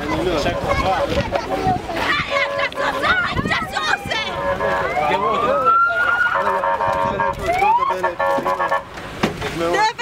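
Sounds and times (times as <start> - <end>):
people shouting: 0.5 - 6.8
vehicle siren wailing: 3.8 - 8.9.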